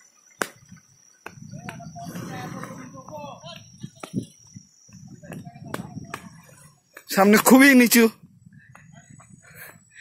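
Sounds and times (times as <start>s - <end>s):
steady high-pitched whine: 0.0s - 10.0s.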